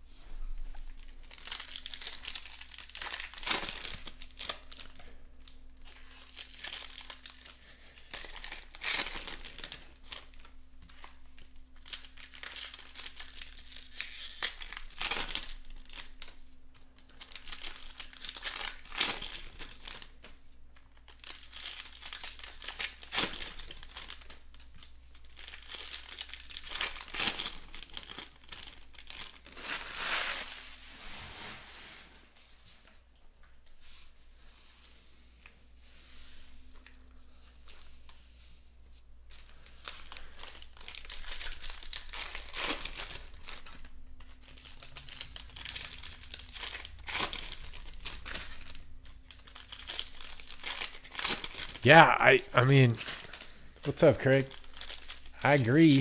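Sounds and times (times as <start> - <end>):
foil wrappers tearing and crinkling: 0.9 - 16.4, 17.0 - 30.9, 39.3 - 51.8, 52.6 - 56.0.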